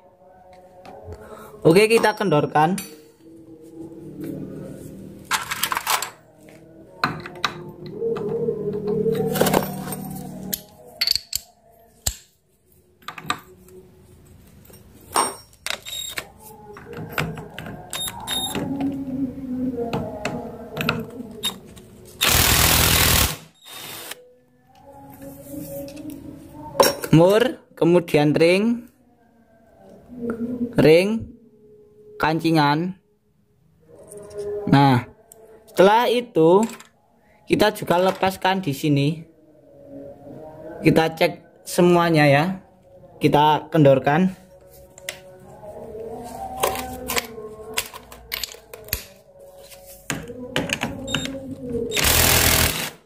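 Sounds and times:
metal parts knocking and scraping: 5.3s - 6.2s, 8.9s - 12.2s, 14.6s - 18.6s
loud rasping burst: 22.2s - 24.2s, 52.0s - 53.0s.

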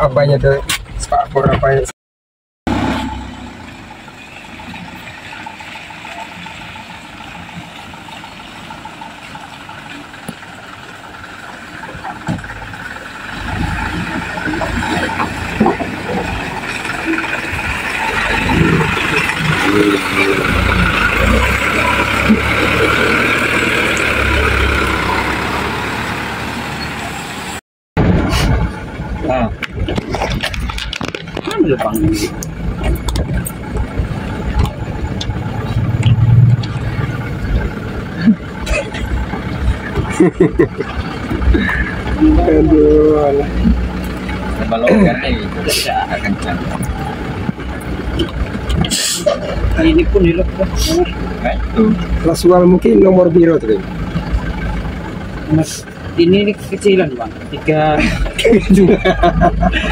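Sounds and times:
truck engine labouring: 2.7s - 59.9s.

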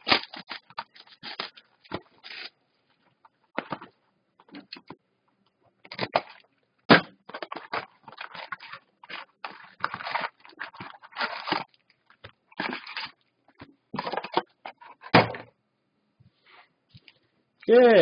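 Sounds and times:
foil packs crinkling: 0.0s - 2.6s, 7.3s - 13.3s
cardboard box rustling: 7.3s - 11.8s.

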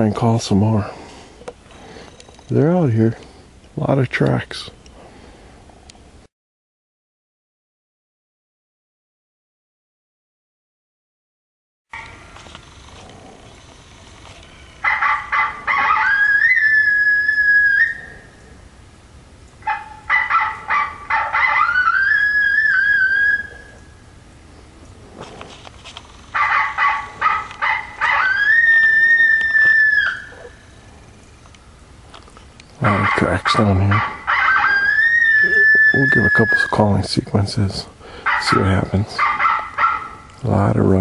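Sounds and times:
electronic predator call: 32.8s - 36.8s.

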